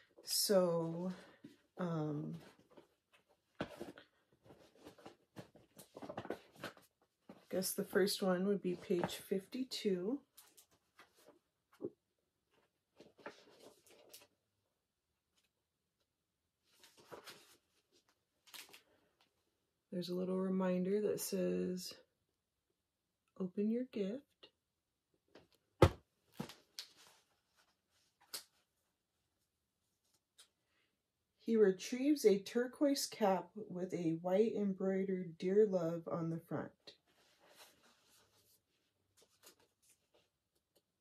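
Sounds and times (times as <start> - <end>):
paper and packaging rustling: 2.2 - 8.2, 12.5 - 14.3, 16.6 - 18.9, 37.1 - 40.8.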